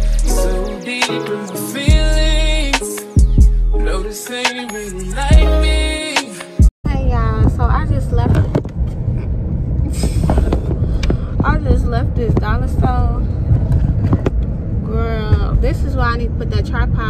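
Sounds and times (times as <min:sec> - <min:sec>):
woman talking: 0:06.8 - 0:08.6, 0:11.4 - 0:13.3, 0:14.9 - 0:17.0
car cabin rumble: 0:09.7 - 0:17.0.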